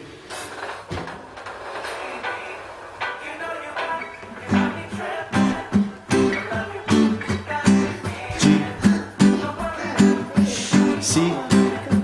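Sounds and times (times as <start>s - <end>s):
acoustic guitar strumming: 1.8s - 12.0s.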